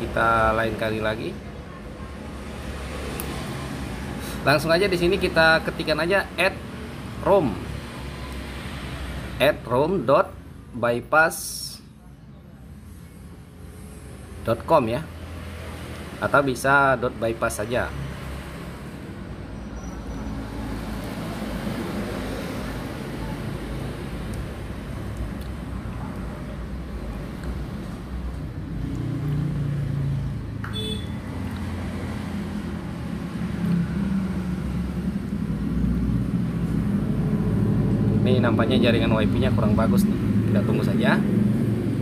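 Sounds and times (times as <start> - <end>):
low rumble of road traffic: 0.0 - 42.0.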